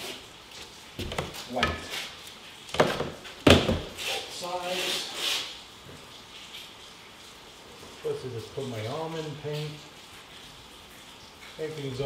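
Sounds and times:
thumps on wooden stairs: 1.0 - 1.9, 2.7 - 4.0
soft rubbing scrape: 3.9 - 5.6.

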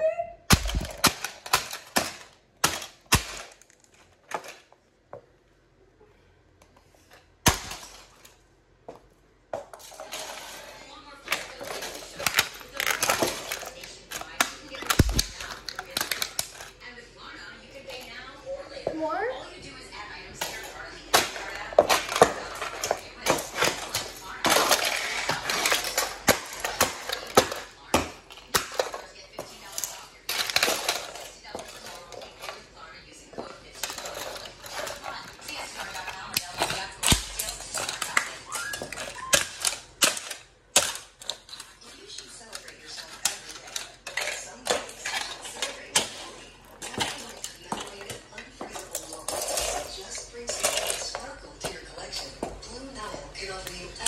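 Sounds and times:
broken pieces clattering: 0.5 - 4.8, 7.4 - 8.4, 9.5 - 16.9, 20.4 - 32.8, 33.4 - 52.6
plastic cracking and crunching: 0.5 - 4.8, 7.1 - 8.4, 9.7 - 17.0, 20.2 - 54.0.

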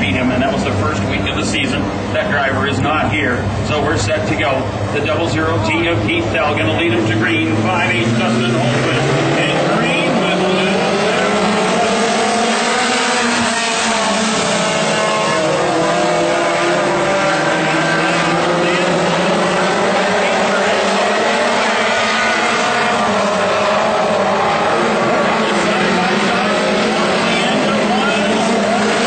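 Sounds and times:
race car engines running hard: 0.0 - 29.0.

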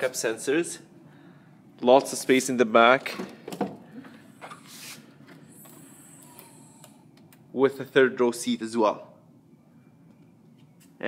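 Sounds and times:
faint high hum: 3.8 - 11.0.

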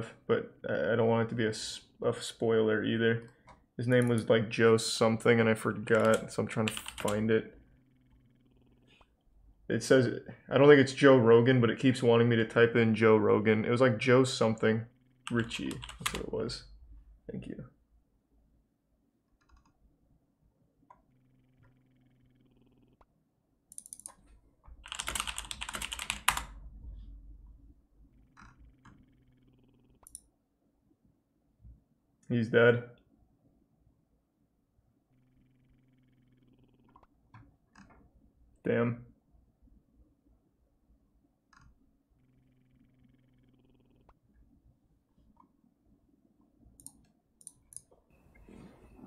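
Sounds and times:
faint buzzing hum: 0.0 - 49.0
computer keyboard typing: 5.8 - 7.3, 15.3 - 16.3, 23.7 - 26.6.

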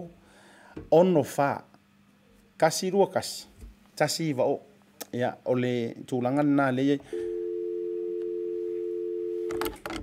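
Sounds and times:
telephone dial tone: 7.1 - 10.0.

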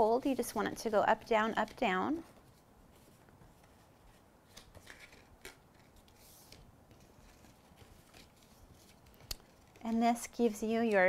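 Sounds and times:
card being folded crackling: 1.6 - 10.0.

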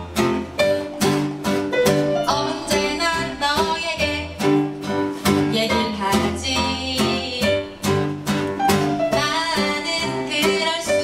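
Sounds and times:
acoustic guitar strumming: 0.0 - 11.0
woman singing: 2.2 - 8.0, 9.0 - 11.0.

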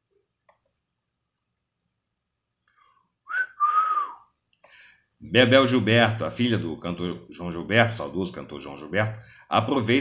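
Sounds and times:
man whistling two notes: 3.3 - 4.3.

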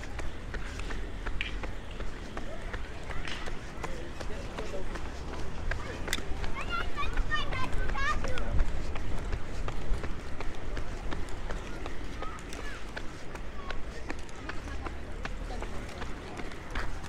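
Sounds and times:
inline skates rolling on asphalt: 0.0 - 17.0.

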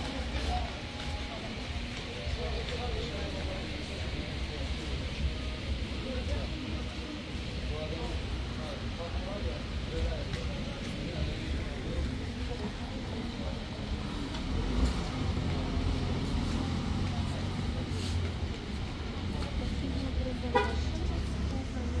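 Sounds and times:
people talking: 0.0 - 22.0
car horn toot: 20.5 - 20.8.

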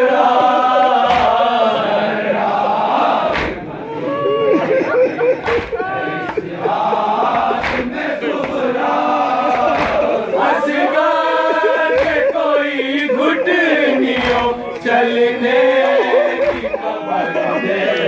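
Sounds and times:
crowd of men chanting: 0.0 - 18.0
man singing mournful lament: 0.0 - 18.0.

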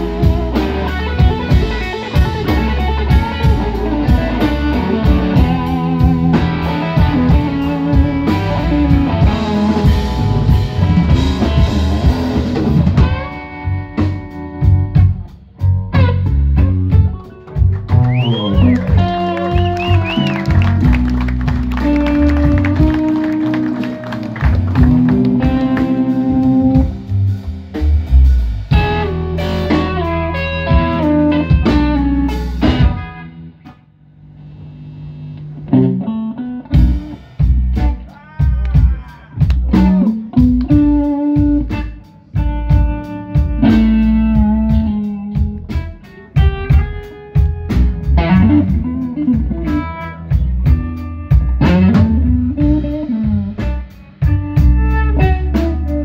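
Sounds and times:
blues-rock band playing: 0.0 - 33.8, 34.4 - 56.0
electric guitar lead with bends: 0.0 - 56.0.

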